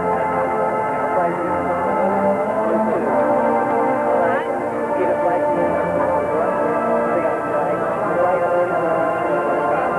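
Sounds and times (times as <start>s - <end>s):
marching band brass and woodwinds: 0.0s - 9.9s.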